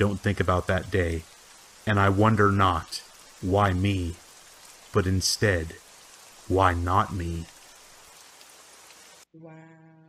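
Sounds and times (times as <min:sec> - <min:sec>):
steady rain: 0:00.0 - 0:09.3.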